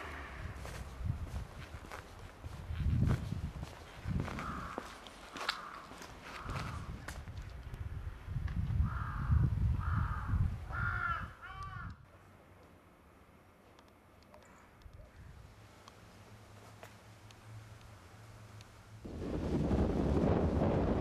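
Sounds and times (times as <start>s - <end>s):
low rumbling noise: 0.0s - 1.8s, 17.4s - 21.0s.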